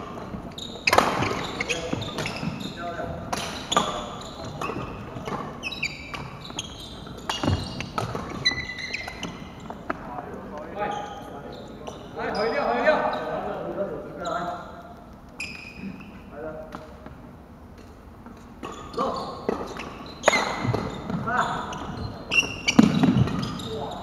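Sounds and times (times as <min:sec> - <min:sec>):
shoes squeaking on floor: 0:00.0 - 0:13.5, 0:14.1 - 0:24.0
players' voices: 0:07.0 - 0:15.0.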